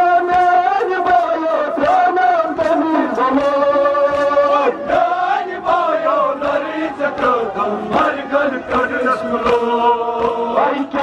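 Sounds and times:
men chanting through microphones: 0.0 - 11.0.

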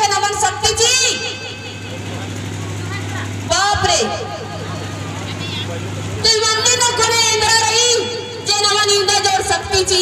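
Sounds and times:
faint voices: 1.4 - 10.0.

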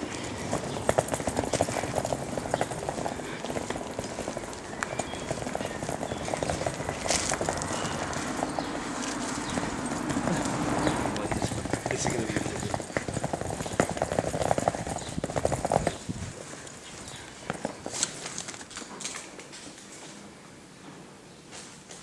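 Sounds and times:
footsteps on paving stones: 0.0 - 20.2.

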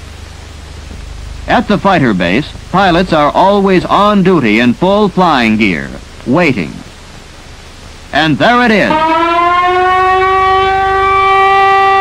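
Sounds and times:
electric alarm horn tone: 8.8 - 12.0.

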